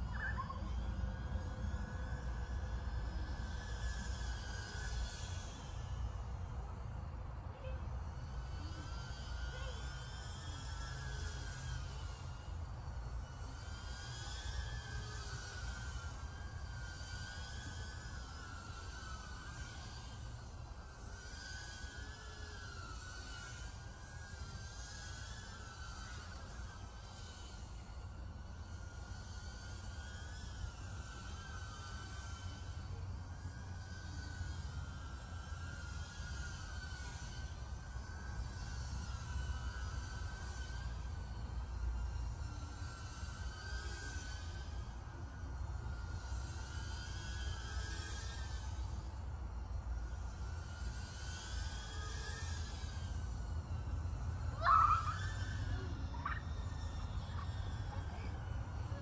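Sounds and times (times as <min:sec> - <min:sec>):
low steady rumble: 0:00.0 - 0:22.0, 0:26.6 - 0:59.0
drone motors whining: 0:00.0 - 0:59.0.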